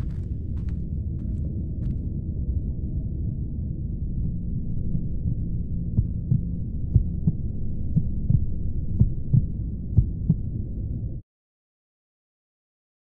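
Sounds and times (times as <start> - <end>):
low rumbling drone: 0.0 - 11.2.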